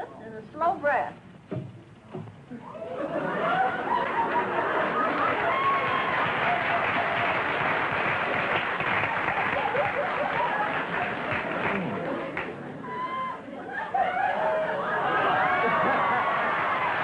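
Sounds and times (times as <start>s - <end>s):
audience laughing: 2.5s - 7.8s, 8.9s - 17.0s
applause: 3.9s - 12.6s, 15.6s - 17.0s.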